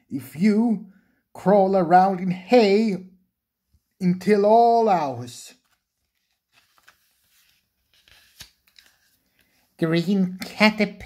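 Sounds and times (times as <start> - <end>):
man reading aloud: 0.0 - 3.2, 3.8 - 5.8, 9.8 - 11.0.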